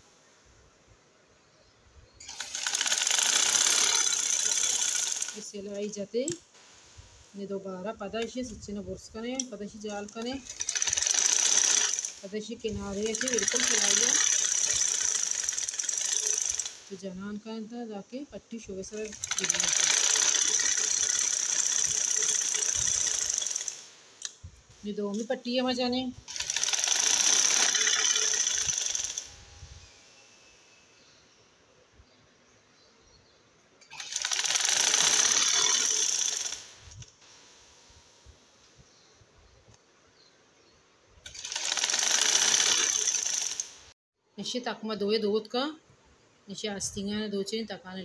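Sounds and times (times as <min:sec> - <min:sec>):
sewing machine running fast: 0:02.2 - 0:05.4, 0:10.4 - 0:12.2, 0:13.0 - 0:16.8, 0:19.1 - 0:23.8, 0:26.3 - 0:29.3, 0:33.9 - 0:36.6, 0:41.3 - 0:43.7.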